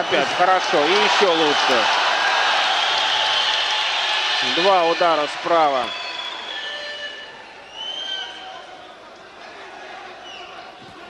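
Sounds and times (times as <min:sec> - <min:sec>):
murmur of crowd voices: 0:06.5 - 0:11.0.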